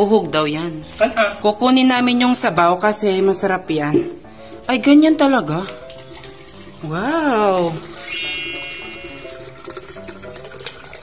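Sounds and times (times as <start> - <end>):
background music of short notes: 3.6 - 11.0
water trickling into plastic cup: 5.2 - 11.0.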